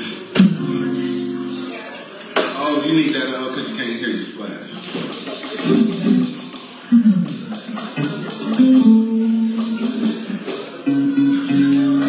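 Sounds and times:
guitar playing slow chords: 0:00.3 - 0:02.0, 0:05.6 - 0:12.0.

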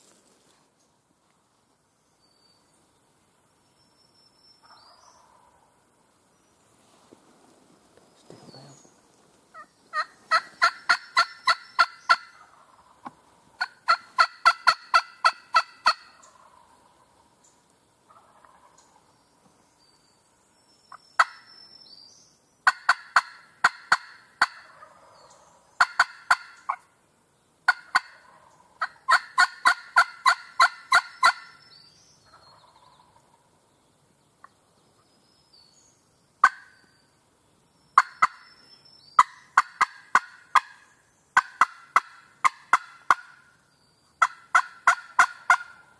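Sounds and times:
turkey yelps: 0:36.4 - 0:36.8, 0:38.0 - 0:38.4, 0:44.2 - 0:45.8.

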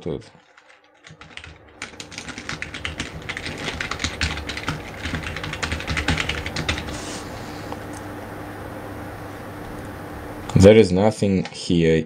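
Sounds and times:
fast typing on keyboard: 0:00.3 - 0:07.0.

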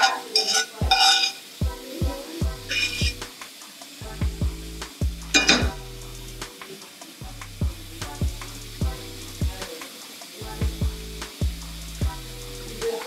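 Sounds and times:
metal spoon scraping a frying pan: 0:00.0 - 0:01.4, 0:02.7 - 0:03.2, 0:05.4 - 0:05.7
music with deep bass beat: 0:01.6 - 0:13.0.

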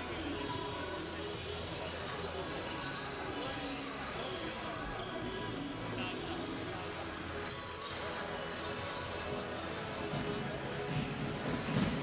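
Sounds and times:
crowd chatter: 0:00.0 - 0:12.0
music: 0:00.0 - 0:12.0.

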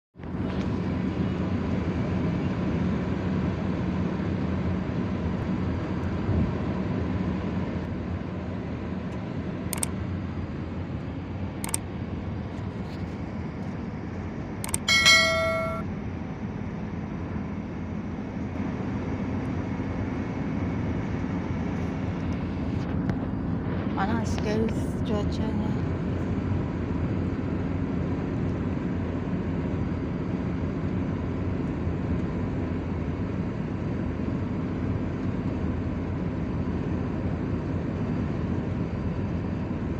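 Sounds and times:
car road and engine rumble: 0:00.2 - 0:39.9
sharp clicks: 0:09.8 - 0:10.0, 0:14.6 - 0:15.8
pitched beep: 0:14.7 - 0:15.8.

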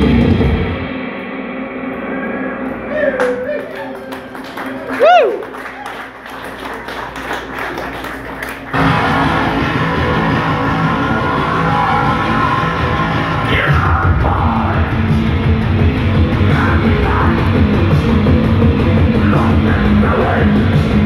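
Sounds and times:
crowd noise: 0:01.9 - 0:21.0
live rock band playing: 0:08.8 - 0:21.0.

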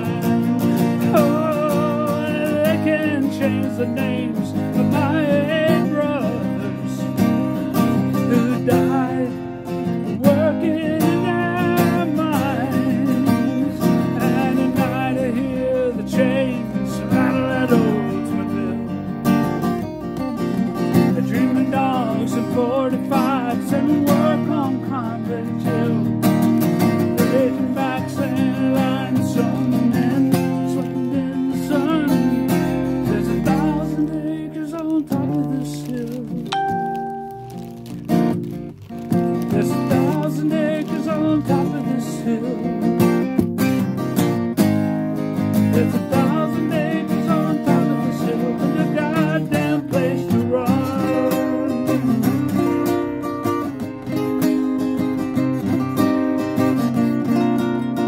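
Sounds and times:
man singing: 0:00.0 - 0:19.2, 0:21.0 - 0:26.3, 0:27.1 - 0:37.3, 0:39.4 - 0:43.1, 0:45.6 - 0:53.2
strummed acoustic guitar: 0:00.0 - 0:58.0.

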